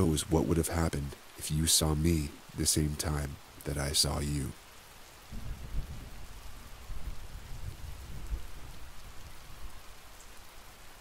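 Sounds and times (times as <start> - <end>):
rainfall hissing: 0.0 - 11.0
distant thunder rumble: 5.3 - 9.8.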